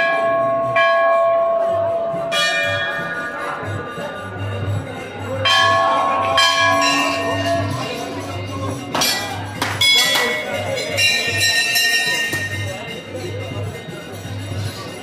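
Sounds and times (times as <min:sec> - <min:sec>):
temple bells ringing: 0:00.0 - 0:15.0.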